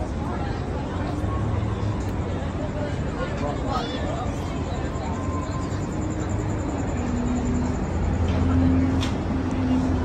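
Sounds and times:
traffic engine rumble: 0.0s - 10.0s.

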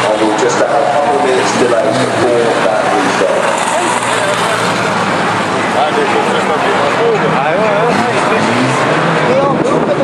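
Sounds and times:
crowd voices calling out: 0.0s - 9.4s
race car engines droning: 0.0s - 10.0s.

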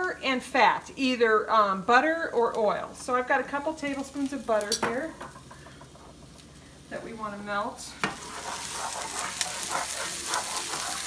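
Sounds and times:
vegetables sizzling in a frying pan: 1.0s - 11.0s
spatula scraping: 8.1s - 11.0s.

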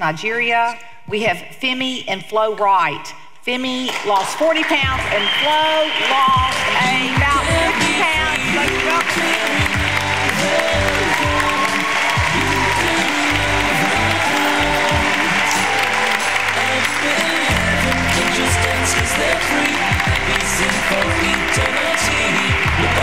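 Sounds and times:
audience applause: 4.6s - 23.0s
music playing: 4.6s - 23.0s.

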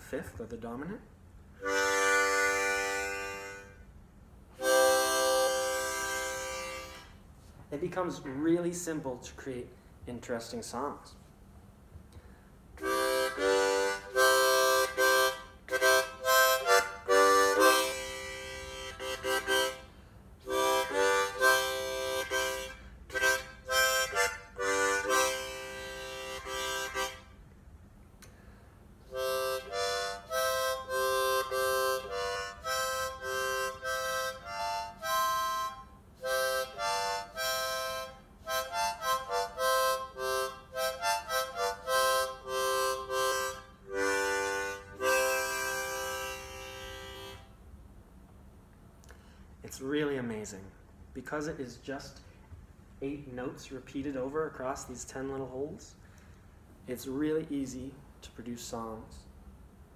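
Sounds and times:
harmonica playing chords and tune: 1.6s - 7.2s, 12.8s - 27.4s, 29.0s - 47.6s.

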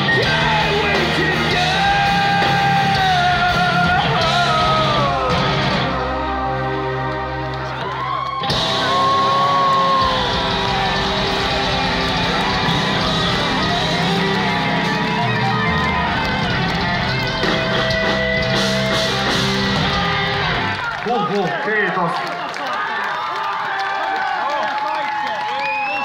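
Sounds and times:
metal band playing live: 0.0s - 21.4s.

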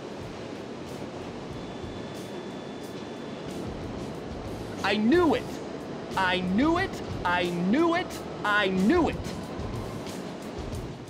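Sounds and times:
faint high whine: 0.0s - 11.0s
rushing tunnel noise: 0.0s - 11.0s.

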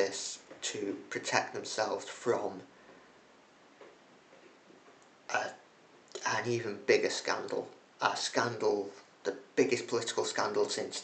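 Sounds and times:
man's hesitant voice: 5.3s - 5.6s.

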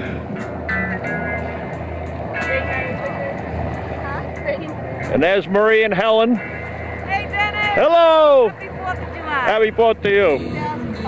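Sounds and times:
faint music: 0.0s - 11.0s
wind rumble on microphone: 6.8s - 11.0s.

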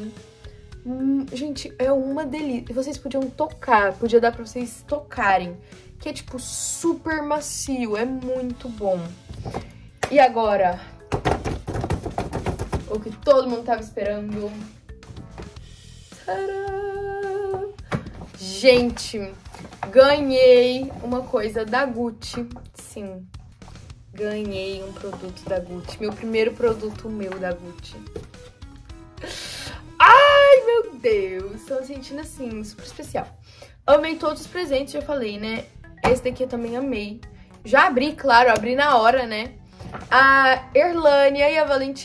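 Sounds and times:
drumroll of hand taps: 11.1s - 13.0s
woman squealing with delight: 30.0s - 30.7s.

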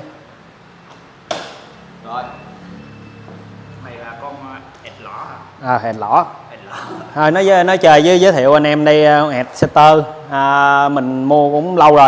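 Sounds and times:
motorcycle set onto stand knock: 1.3s - 1.7s.

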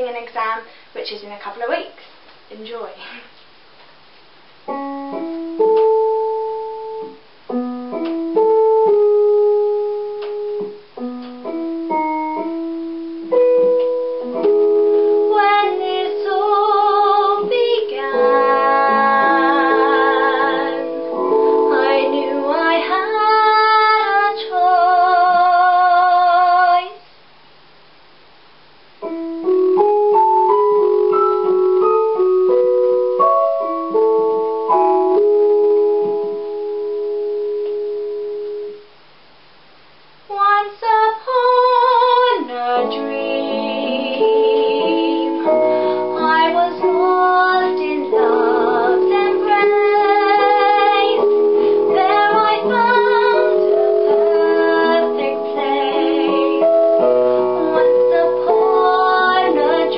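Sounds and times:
piano notes and chords: 4.6s - 26.7s, 29.0s - 39.0s, 41.6s - 59.9s
young woman singing with vibrato: 15.1s - 27.0s, 40.3s - 59.9s.

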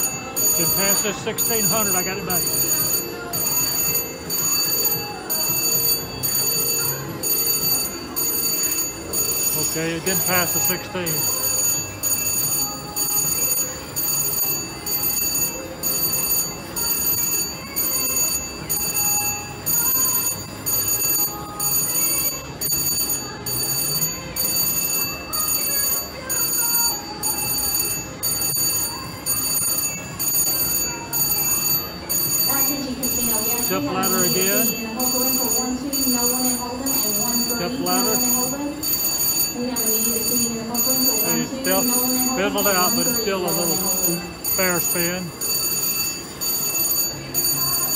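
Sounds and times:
slot machine ringing chime: 0.0s - 47.9s.

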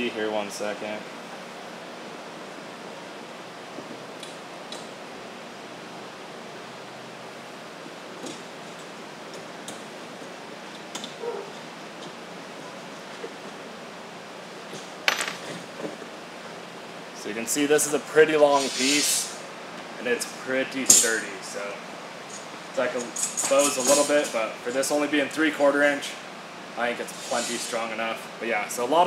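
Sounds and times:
background hiss: 17.1s - 28.9s
metal parts clicking and clinking: 22.3s - 24.4s.

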